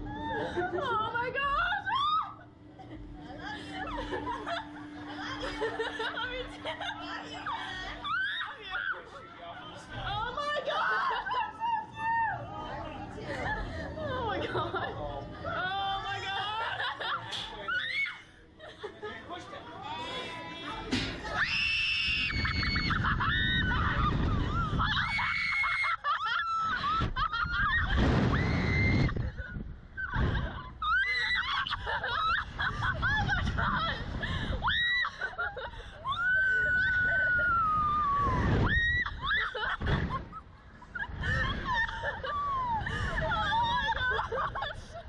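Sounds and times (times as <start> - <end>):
young women laughing: 0.0 - 9.0, 10.2 - 12.5, 13.2 - 19.8, 22.2 - 45.0
wind rushing over microphone: 22.0 - 25.4, 26.8 - 30.8, 36.6 - 44.6.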